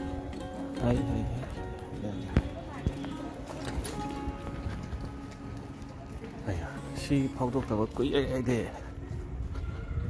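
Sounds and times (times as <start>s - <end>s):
faint background music: 0.0s - 10.0s
voices: 0.0s - 10.0s.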